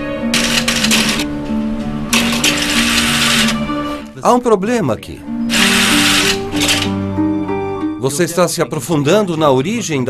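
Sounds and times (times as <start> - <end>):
background music with held notes: 0.0 - 10.0.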